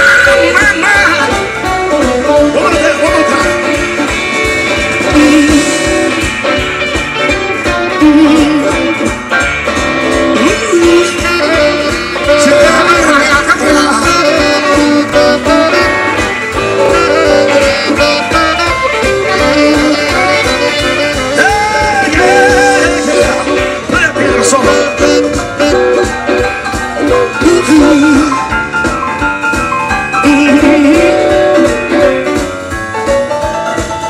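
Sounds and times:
saxophone: 0:00.0 - 0:28.8, 0:29.4 - 0:32.8
bass: 0:00.0 - 0:34.0
drums: 0:00.0 - 0:34.0
electric guitar: 0:00.0 - 0:34.0
keyboards: 0:00.0 - 0:34.0.

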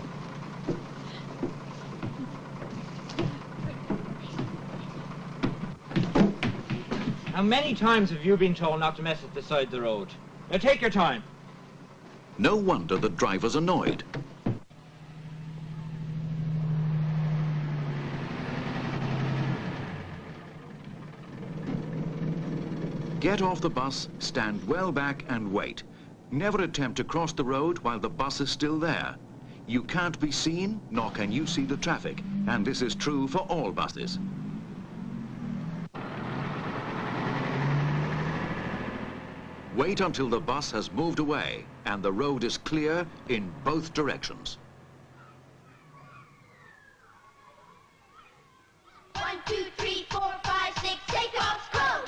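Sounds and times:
bus engine running: 0:00.0 - 0:46.7.

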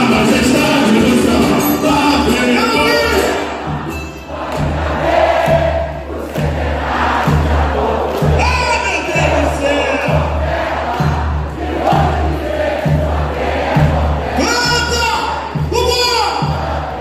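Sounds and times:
crowd singing: 0:00.0 - 0:15.6, 0:16.3 - 0:17.0
samba drumming: 0:00.0 - 0:17.0
steady low drum beat: 0:00.0 - 0:17.0.

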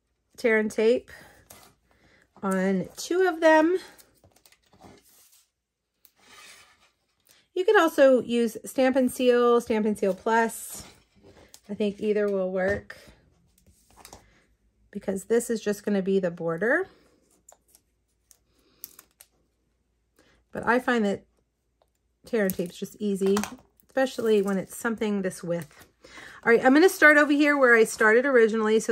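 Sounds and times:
faint clicks and rustles of cardstock: 0:09.9 - 0:12.4, 0:13.0 - 0:14.5
cardstock and tape clicks and rustling: 0:22.3 - 0:25.9.

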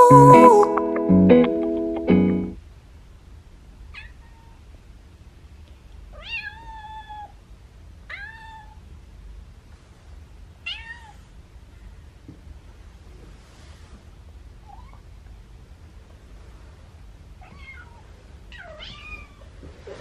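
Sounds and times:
music: 0:00.0 - 0:02.6.

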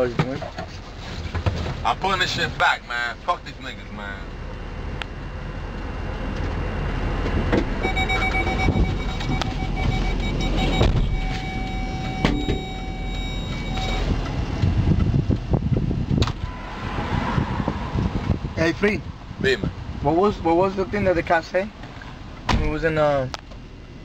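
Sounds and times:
car engine rumble: 0:00.0 - 0:24.0
thumps: 0:07.3 - 0:14.7
car electronic warning tone: 0:07.7 - 0:14.3.

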